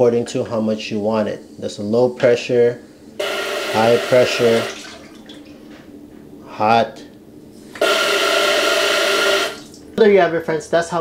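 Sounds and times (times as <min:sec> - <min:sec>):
steady whine: 0:02.5 - 0:04.8, 0:05.6 - 0:10.0.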